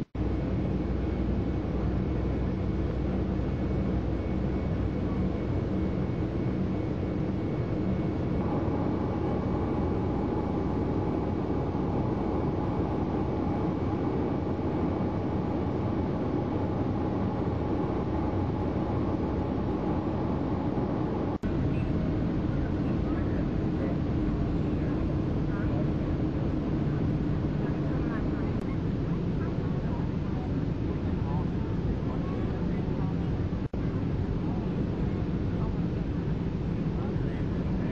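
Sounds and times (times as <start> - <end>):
airplane cabin engine rush: 0.0 - 37.9
faint whine: 0.0 - 37.9.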